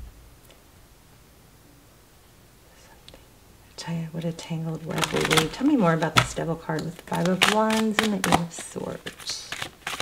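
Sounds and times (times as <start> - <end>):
woman speaking: 3.7 - 9.6
tarot cards clicking: 4.8 - 10.0.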